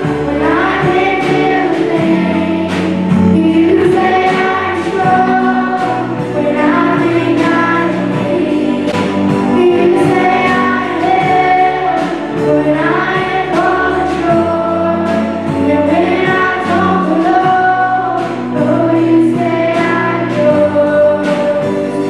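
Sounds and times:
acoustic guitar: 0.0 - 22.0
drum kit with cymbal hits: 0.0 - 22.0
keyboard: 0.0 - 22.0
women singing together: 0.0 - 22.0.

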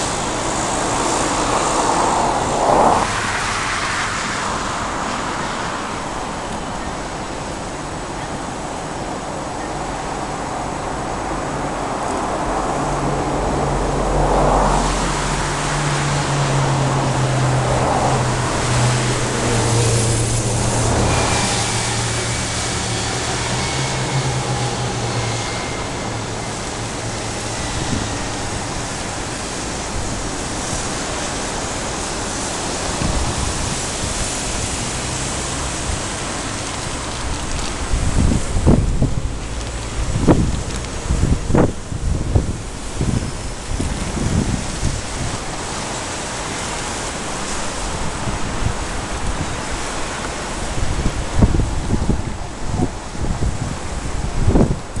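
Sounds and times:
low engine drone: 0.0 - 48.2
city road traffic: 0.0 - 55.0
wind buffeting microphone: 0.0 - 55.0.

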